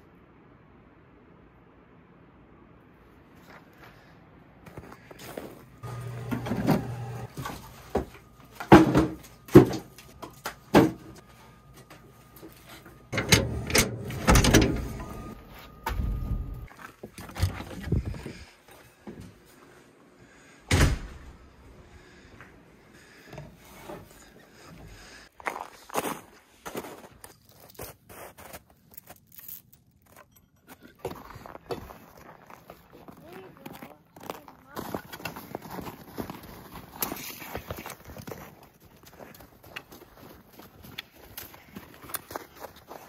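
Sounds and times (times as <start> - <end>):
door banging shut: 13.2 - 15.0, 20.7 - 21.3
footsteps crunching on snow: 25.4 - 29.3, 31.1 - 43.0.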